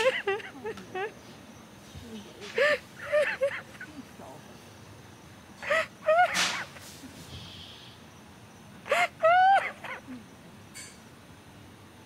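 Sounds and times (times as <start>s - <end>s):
woman crying with wavering wails: 2.6s - 4.0s, 5.6s - 6.4s, 8.8s - 10.3s.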